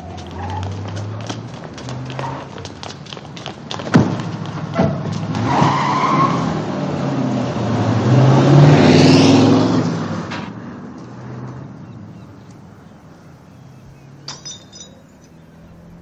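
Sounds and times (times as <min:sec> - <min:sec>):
tires squealing: 0:00.0 - 0:10.5
car engines revving: 0:00.0 - 0:16.0.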